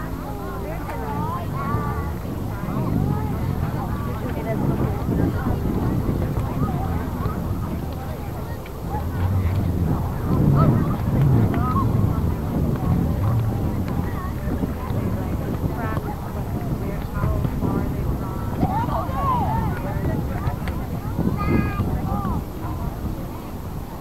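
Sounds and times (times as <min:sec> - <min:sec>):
low wind rumble on microphone: 0:00.0 - 0:24.0.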